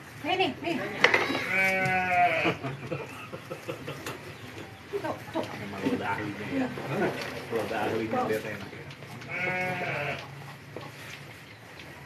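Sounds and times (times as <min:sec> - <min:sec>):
cow mooing: 0:09.3 - 0:10.2.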